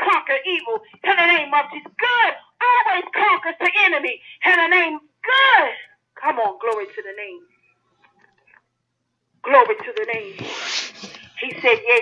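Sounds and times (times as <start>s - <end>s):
rubbing hiss: 10.3s - 11.4s.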